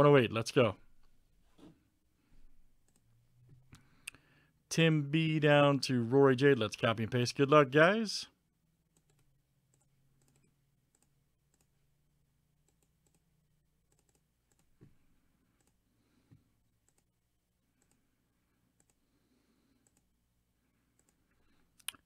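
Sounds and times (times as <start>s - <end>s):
computer mouse clicks: 8.9s - 11.7s, 12.6s - 13.2s, 13.9s - 14.8s, 15.6s - 15.8s, 16.8s - 17.1s, 17.8s - 18.0s, 18.8s - 19.0s, 19.8s - 20.1s, 20.9s - 22.0s.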